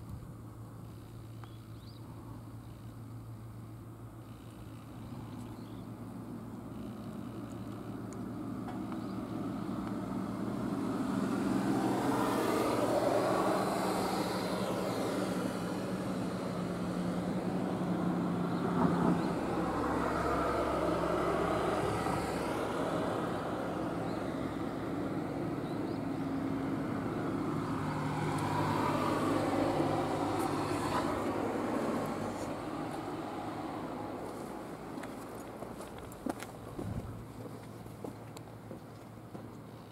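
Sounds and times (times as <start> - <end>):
cars passing: 6.1 - 39.6.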